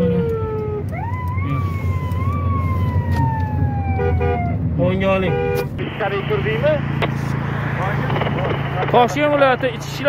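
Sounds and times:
low engine hum: 0.0 - 10.0
street noise: 0.0 - 10.0.

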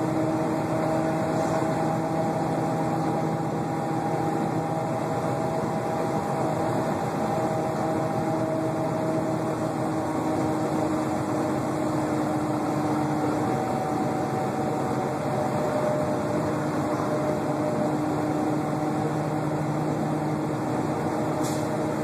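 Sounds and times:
diesel engine hum: 0.0 - 22.0.

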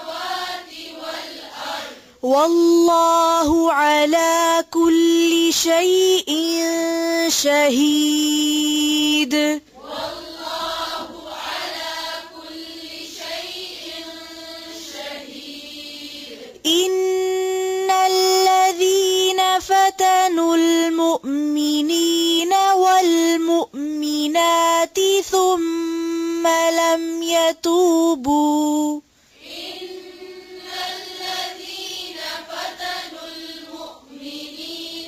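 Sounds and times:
faint reciting voice: 0.0 - 35.0
melodic recitation by one voice: 0.0 - 35.0.

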